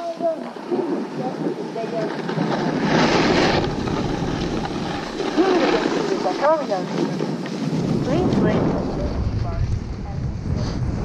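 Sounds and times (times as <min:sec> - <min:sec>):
snowboard scraping on snow: 0:00.0 - 0:11.0
wind buffeting microphone: 0:00.0 - 0:11.0.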